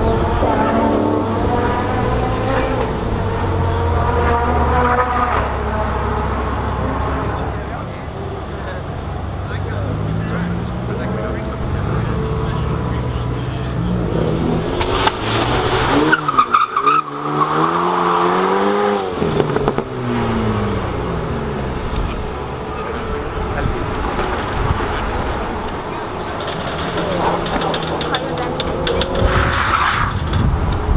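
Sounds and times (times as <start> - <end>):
sports car engine revving: 0.0 - 30.9.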